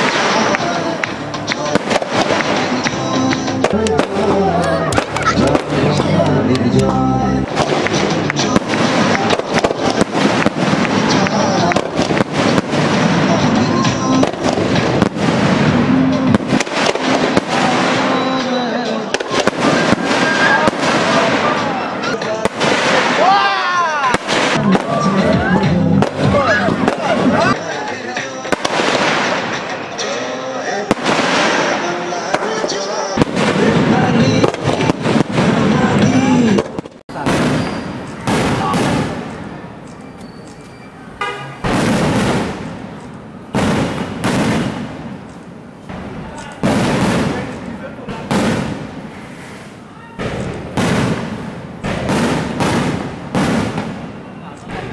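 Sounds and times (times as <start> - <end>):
voices: 0.0 - 15.1, 15.7 - 41.8, 45.8 - 48.6, 49.8 - 50.6, 53.8 - 54.9
fireworks bursting and crackling: 0.0 - 54.9
music: 0.1 - 20.7, 24.6 - 36.6.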